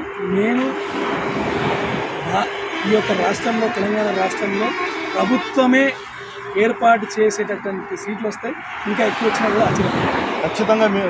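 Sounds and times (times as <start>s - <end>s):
motor vehicle passing: 0.0s - 11.0s.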